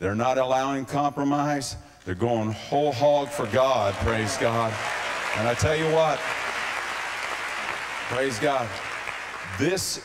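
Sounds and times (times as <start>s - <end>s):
congregation applauding: 3.2s - 10.0s.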